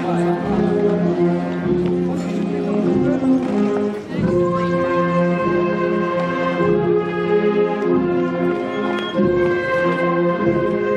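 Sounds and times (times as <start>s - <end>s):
brass band playing slow piece: 0.0s - 10.9s.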